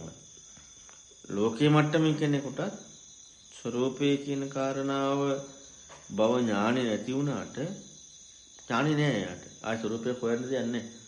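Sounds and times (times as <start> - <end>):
man talking: 0.0 - 0.2, 1.2 - 2.9, 3.6 - 5.5, 6.1 - 7.9, 8.7 - 11.0
crickets chirring: 0.0 - 11.0.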